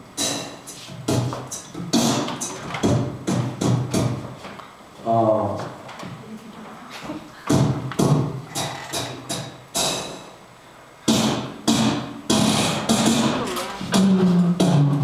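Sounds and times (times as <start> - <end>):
beatboxing into a microphone: 0.2 - 4.4, 7.4 - 10.3, 11.1 - 15.0.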